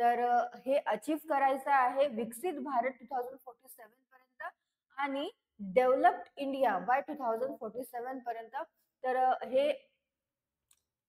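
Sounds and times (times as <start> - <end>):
woman speaking: 0.0 - 9.9.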